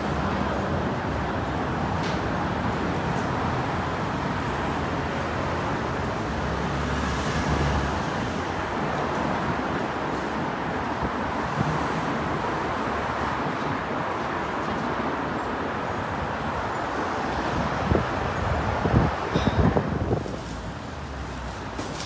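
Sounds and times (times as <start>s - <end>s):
city street traffic: 0.0s - 22.0s.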